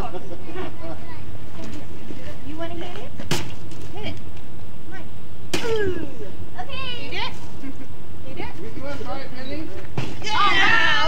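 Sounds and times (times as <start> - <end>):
voices of children and adults: 0.0 - 9.0.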